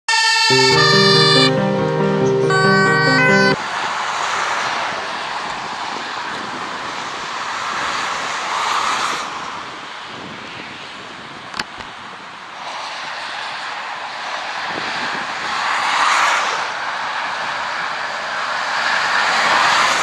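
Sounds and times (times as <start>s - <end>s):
music burst: 0.5s - 3.6s.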